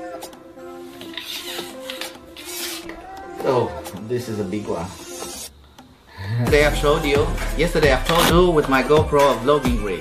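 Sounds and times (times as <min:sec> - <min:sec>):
background music: 0:00.0 - 0:10.0
selfie stick sections sliding: 0:00.8 - 0:03.3.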